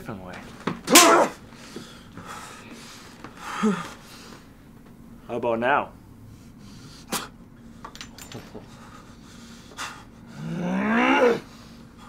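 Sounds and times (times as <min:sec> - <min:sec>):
man groaning: 0:10.4 - 0:11.5.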